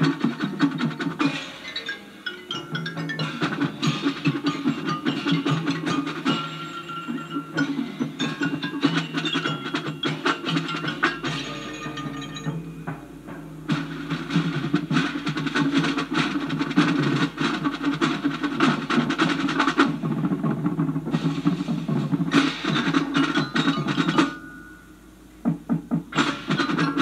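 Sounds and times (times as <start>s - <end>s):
marching drumline through speakers: 0.0s - 27.0s.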